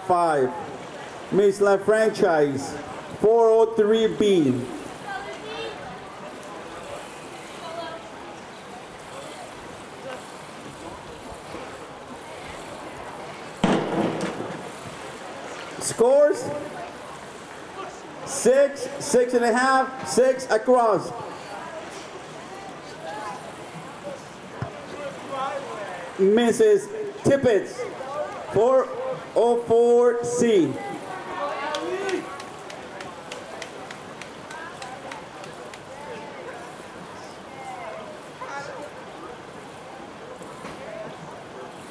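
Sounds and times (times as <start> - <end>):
outdoor pool ambience: 0.0 - 41.9
distant people talking: 4.1 - 19.1, 21.0 - 29.4, 30.7 - 41.9.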